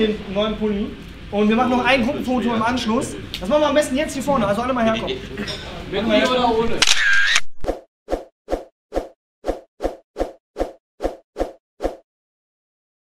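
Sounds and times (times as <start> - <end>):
camera flash burst: 6.8 - 7.6.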